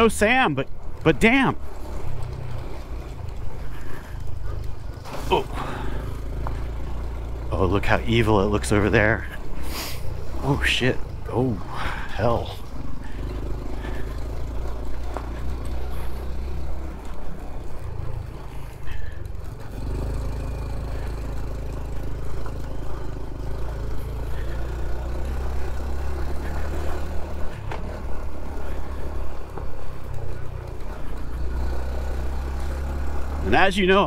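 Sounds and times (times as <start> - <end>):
motorcycle engine running: 0.0 - 34.0.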